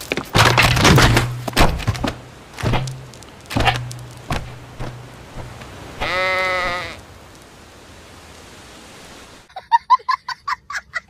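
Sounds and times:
faint steady hiss: 2.1 - 11.0
cartoon animal bleat: 6.0 - 7.0.

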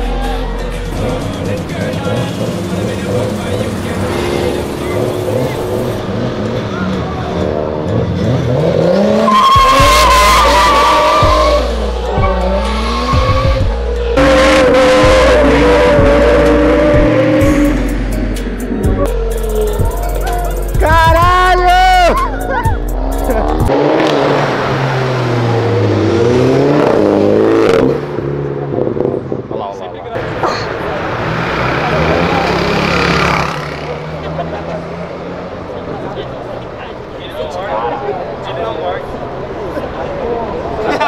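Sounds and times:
car engine revving hard: 0.9 - 19.0, 23.0 - 29.3, 30.2 - 36.0
tyres squealing: 9.2 - 17.3.

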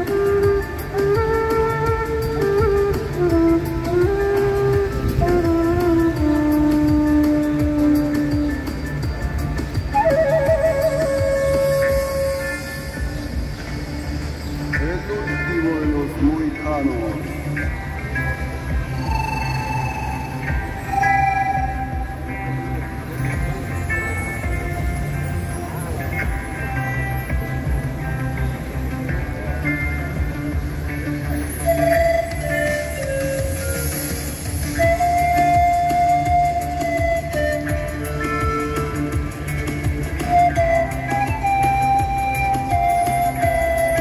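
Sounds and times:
wooden flute long note: 0.0 - 9.0, 9.7 - 13.3, 18.9 - 22.9, 31.5 - 44.0
panpipes playing slow melody: 0.0 - 13.2, 18.8 - 23.0
backing track with steady beat: 0.0 - 44.0.

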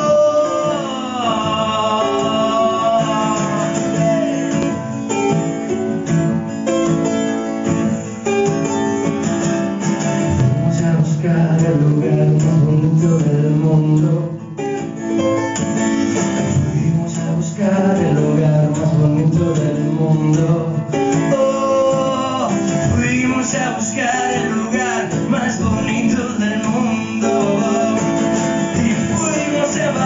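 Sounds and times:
man singing: 0.0 - 5.0, 10.3 - 14.8, 16.2 - 30.0
acoustic guitar strumming: 0.0 - 30.0.

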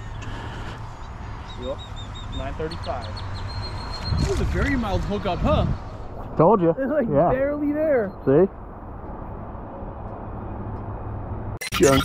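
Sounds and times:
bird chirping: 0.9 - 4.7, 7.5 - 8.5.

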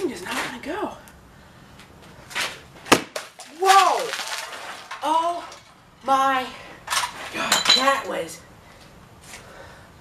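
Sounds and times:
bottle bursting bang: 2.9 - 3.4.

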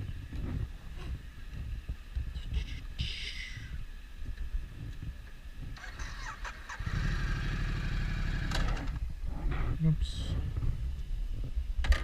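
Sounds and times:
motorcycle engine pulling away: 5.8 - 9.0.

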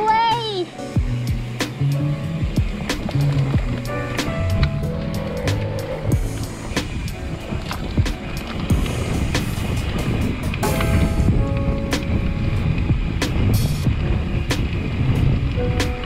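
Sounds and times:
background music: 0.0 - 16.0
mountain bike rattling: 0.0 - 16.0
tyres rumbling on dirt: 1.0 - 16.0
wind on microphone: 1.0 - 16.0.

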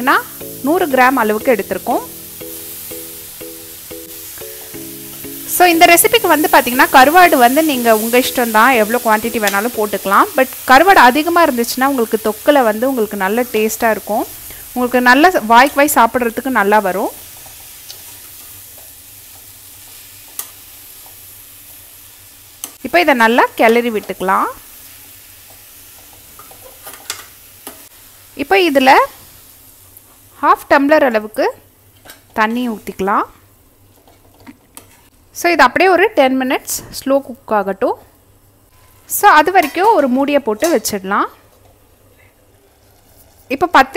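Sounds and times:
low sizzle of frying: 0.0 - 43.9.

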